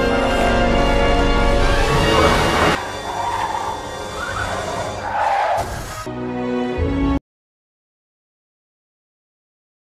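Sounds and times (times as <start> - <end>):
soundtrack music: 0.0 - 7.2.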